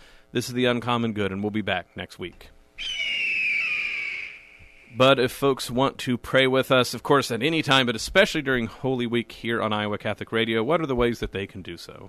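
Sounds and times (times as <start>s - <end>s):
high ringing tone sliding down: 2.8s - 5.1s.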